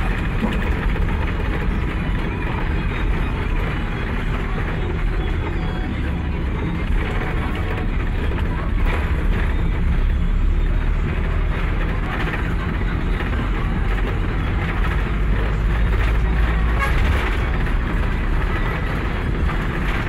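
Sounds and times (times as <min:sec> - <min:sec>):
road noise: 0:00.0 - 0:20.0
vehicle engine rumble: 0:00.0 - 0:20.0.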